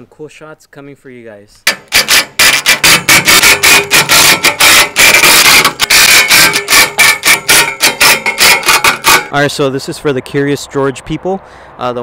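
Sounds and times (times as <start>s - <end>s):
impact driver rattling: 1.7s - 9.3s.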